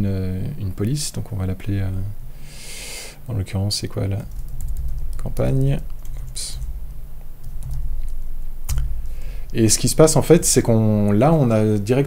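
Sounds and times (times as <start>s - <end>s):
low steady hum: 0.0s - 12.0s
computer keyboard typing: 4.2s - 6.8s, 7.4s - 8.9s.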